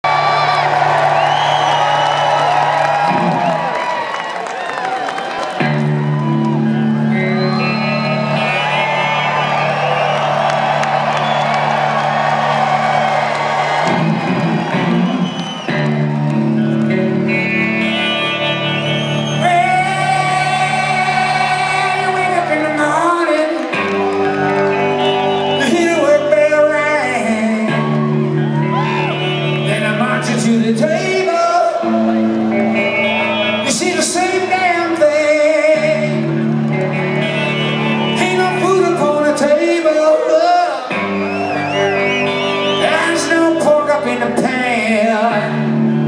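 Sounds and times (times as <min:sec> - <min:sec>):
crowd cheering and whooping: 0:00.0 - 0:46.0
rock band playing: 0:00.0 - 0:46.0.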